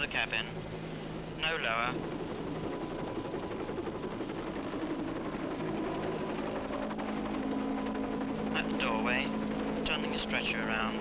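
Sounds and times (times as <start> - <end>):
helicopter engine and rotor: 0.0 - 11.0
higher hum: 0.0 - 11.0
steady low hum: 0.0 - 11.0.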